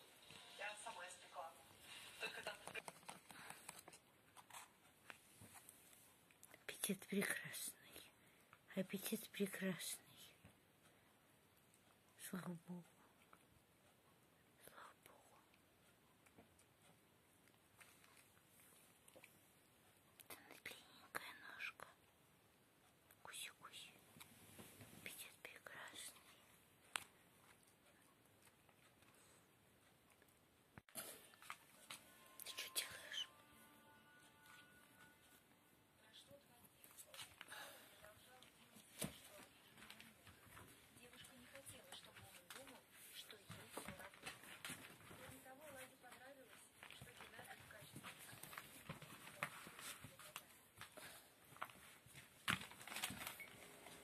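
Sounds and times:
faint whispering voice: 6.4 - 10.5, 12.2 - 13.3, 14.5 - 15.6, 20.2 - 22.1, 23.1 - 24.2, 24.9 - 26.6, 31.0 - 44.3
cat paws tapping on wooden floor: 38.3 - 53.2.

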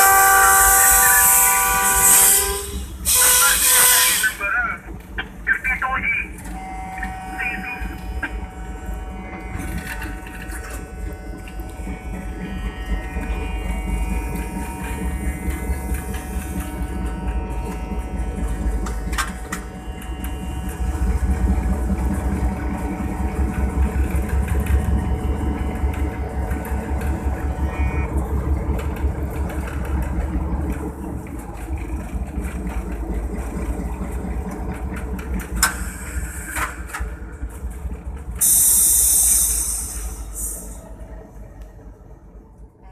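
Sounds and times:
locomotive engine rumble: 0.0 - 42.9
moving train noise: 0.0 - 42.9.

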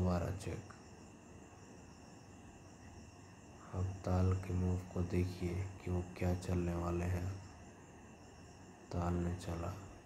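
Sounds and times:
faint high-pitched background noise: 0.0 - 10.0.

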